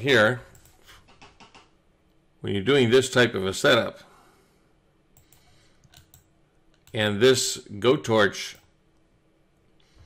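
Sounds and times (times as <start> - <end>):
computer mouse clicks: 0.5 - 1.7, 5.2 - 7.0.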